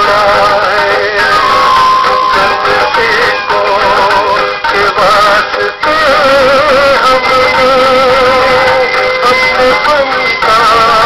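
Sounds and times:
instrumental backing music: 0.0s - 11.0s
person singing a wavering melody: 0.0s - 11.0s.

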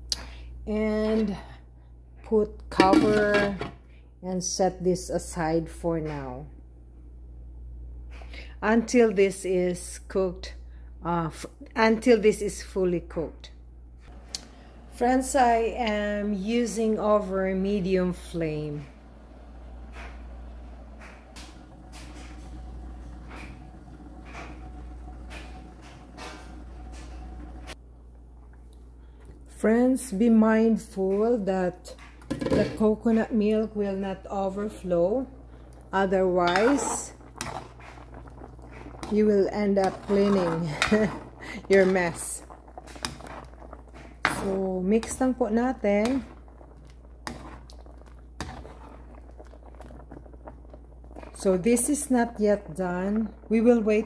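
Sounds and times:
constant low hum: 0.0s - 54.0s
liquid boiling and bubbling: 14.0s - 29.6s, 31.0s - 54.0s
coconut milk simmering: 14.1s - 29.6s, 31.8s - 54.0s
spoon stirring in a pan: 35.5s - 52.2s.

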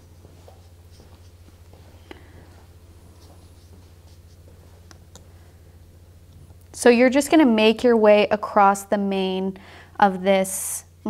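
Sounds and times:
brush scratching on paper: 0.0s - 4.9s
low hum: 0.0s - 11.0s.

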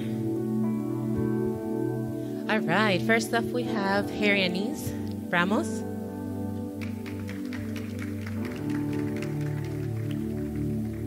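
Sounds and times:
ambient music chords: 0.0s - 11.0s
hand claps: 6.8s - 11.0s.

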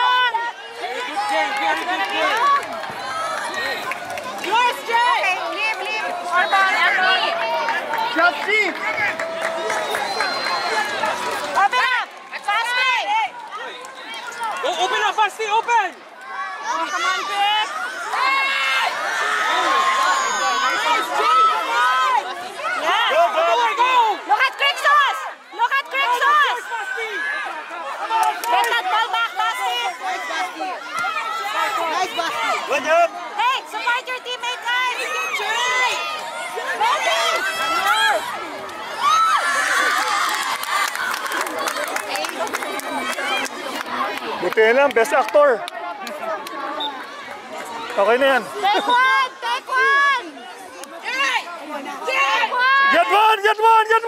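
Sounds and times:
crowd and children cheering: 0.0s - 54.0s
voices shouting to players: 0.0s - 54.0s.

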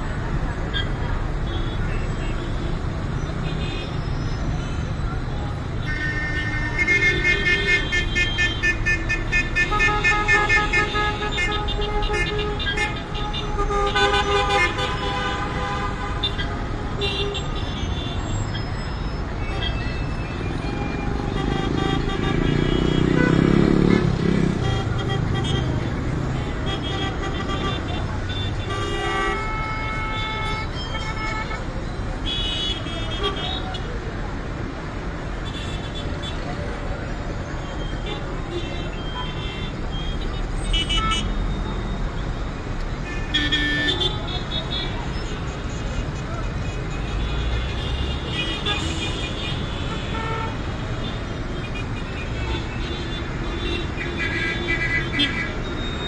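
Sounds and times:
heavy traffic rumble: 0.0s - 56.0s
car horns honking: 5.8s - 33.9s, 37.7s - 42.3s, 42.9s - 56.0s.

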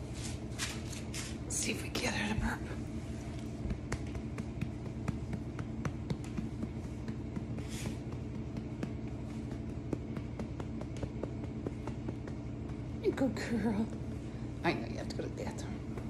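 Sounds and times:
hand patting dog's back: 3.3s - 14.2s.

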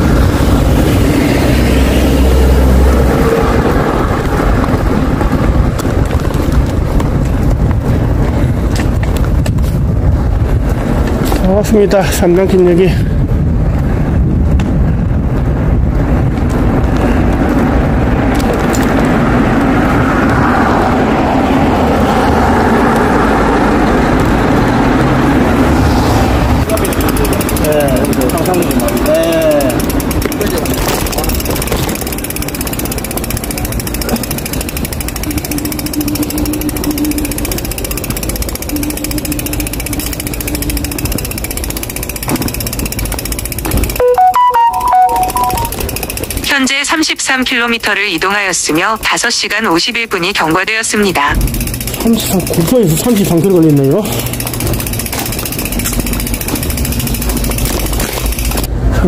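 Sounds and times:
bicycle rolling noise: 0.0s - 59.0s
wind: 0.0s - 59.0s
short chime: 44.0s - 45.8s.

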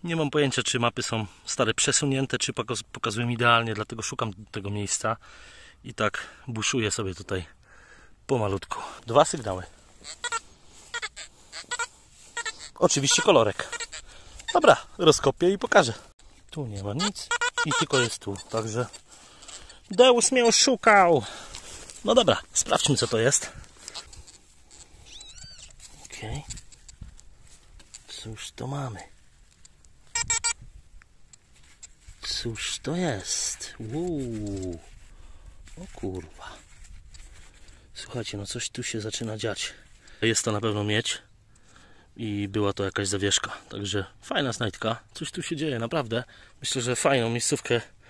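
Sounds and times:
metal detector beeps: 10.0s - 14.8s, 16.8s - 21.4s, 22.6s - 27.0s, 30.1s - 30.7s.

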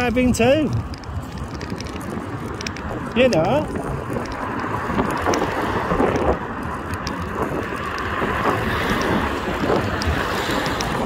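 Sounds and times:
passing cars: 0.0s - 11.0s
wind on microphone: 0.0s - 11.0s.

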